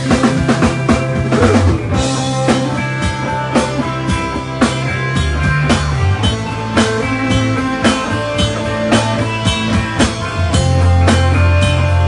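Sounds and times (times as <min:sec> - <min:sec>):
bass guitar: 0:00.0 - 0:12.0
electric guitar: 0:00.0 - 0:12.0.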